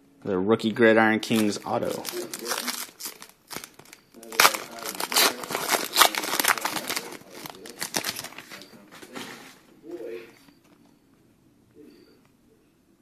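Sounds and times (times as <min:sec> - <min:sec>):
foil wrapper crinkling: 0:01.2 - 0:08.6.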